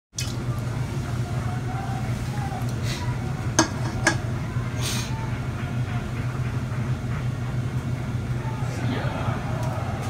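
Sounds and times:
steady low hum: 0.3s - 10.0s.

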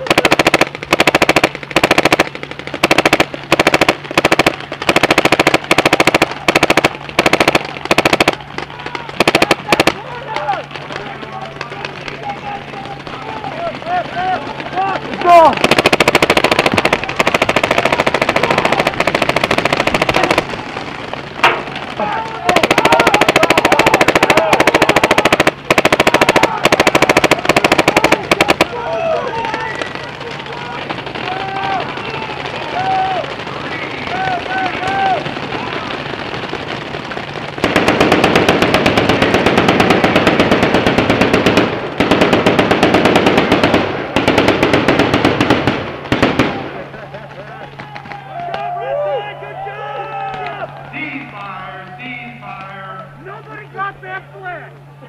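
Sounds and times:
players shouting: 0.0s - 37.6s, 46.4s - 55.0s
paintball marker shots: 22.5s - 28.8s.

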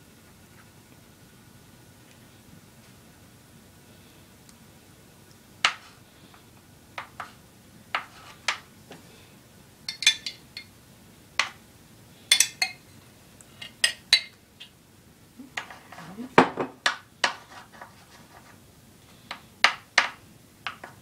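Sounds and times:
metal spoon clinking on pan: 9.9s - 10.7s, 12.3s - 12.8s, 13.6s - 14.4s.

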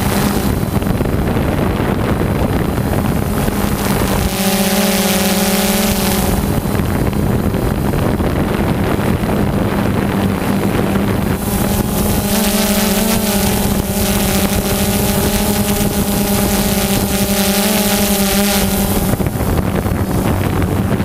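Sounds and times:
drone motors humming: 0.0s - 21.0s
high motor whine: 0.0s - 21.0s
wind rushing over microphone: 0.0s - 21.0s.

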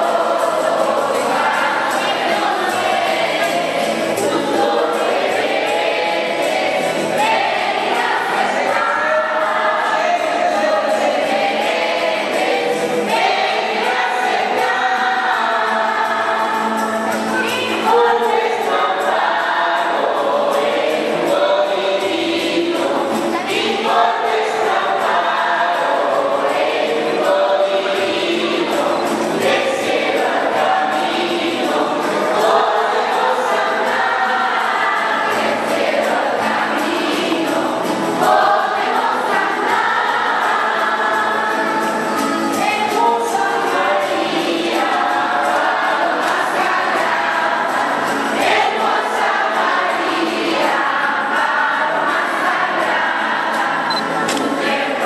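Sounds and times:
crowd singing together: 0.0s - 55.0s.

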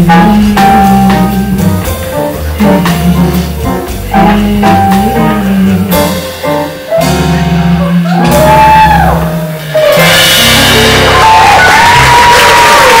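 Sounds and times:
live band playing: 0.0s - 13.0s
crowd cheering and applause: 7.8s - 13.0s.

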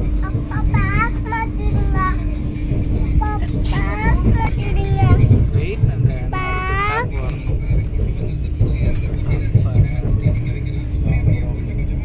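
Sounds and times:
steady hum: 0.0s - 12.0s
train running rumble: 0.0s - 12.0s
child's voice: 0.2s - 2.4s, 3.1s - 5.5s, 6.3s - 7.4s.

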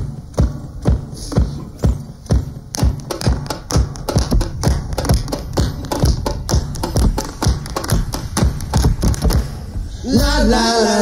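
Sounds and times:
bass drum beat: 0.0s - 10.7s.

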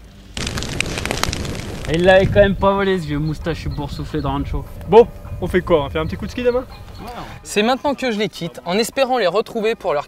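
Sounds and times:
fire crackling: 0.0s - 3.6s.

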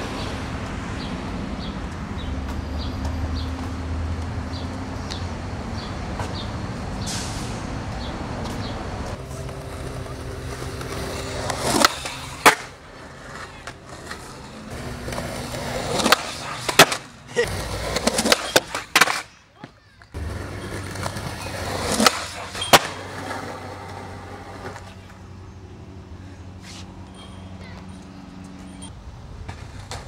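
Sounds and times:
skateboard wheels rolling on concrete: 0.0s - 30.0s
skateboard hitting concrete ledge: 9.5s - 19.4s, 20.2s - 24.8s.

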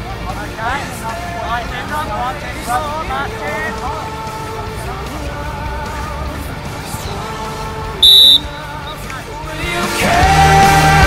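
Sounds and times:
background music: 0.0s - 11.0s
referee's whistle blast: 8.0s - 8.7s.

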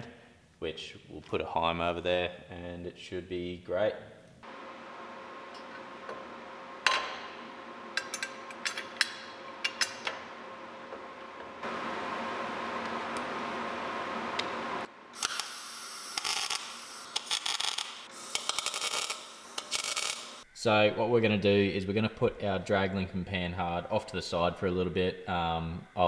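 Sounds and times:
welder arc crackling: 14.2s - 20.4s.

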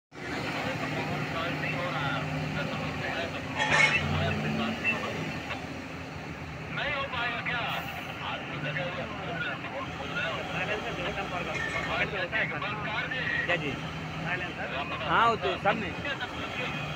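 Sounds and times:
heavy diesel engines running: 0.1s - 16.9s.

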